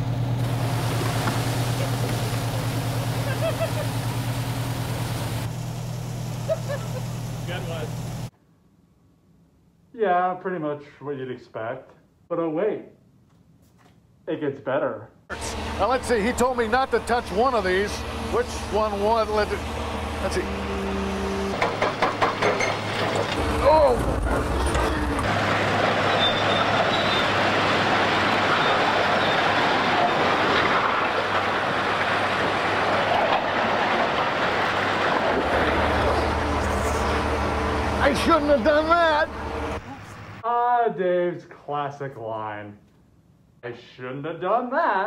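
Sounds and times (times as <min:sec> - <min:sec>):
fire engine running: 0:00.0 - 0:08.3, 0:15.3 - 0:40.4
loud rushing hiss: 0:00.4 - 0:08.3.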